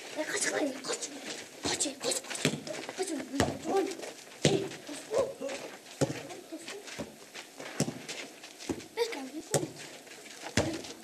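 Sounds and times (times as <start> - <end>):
children calling: 0.2 - 6.9.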